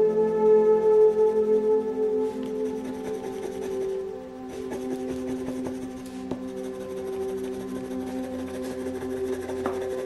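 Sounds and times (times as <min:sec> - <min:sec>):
soft ambient music: 0:00.0 - 0:10.0
crayon scratching on paper: 0:02.3 - 0:10.0.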